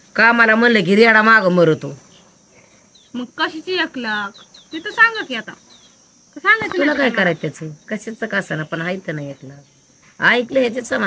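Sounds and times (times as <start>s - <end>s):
high-pitched insect chirring: 0.0s - 11.0s.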